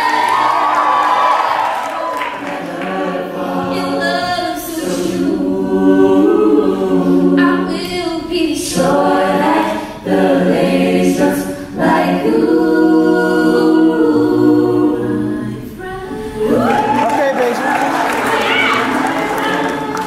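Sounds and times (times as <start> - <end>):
a cappella group singing: 0.0 - 20.0.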